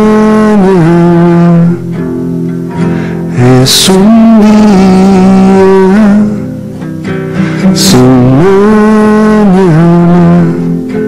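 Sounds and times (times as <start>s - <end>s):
guitar accompaniment: 0.0s - 11.0s.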